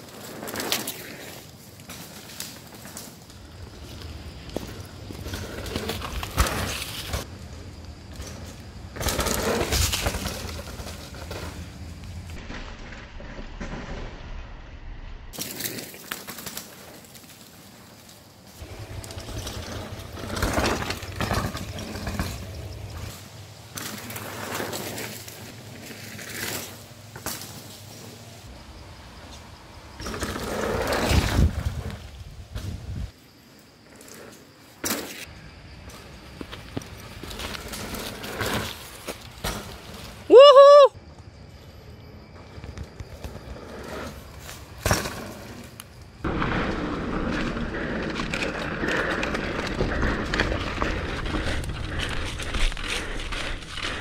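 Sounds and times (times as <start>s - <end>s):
bike tyres rolling on dirt: 0.0s - 54.0s.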